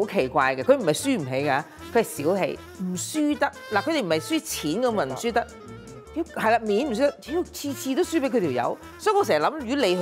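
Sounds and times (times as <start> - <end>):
woman talking: 0.0 - 5.6, 6.2 - 10.0
low background music: 0.0 - 10.0.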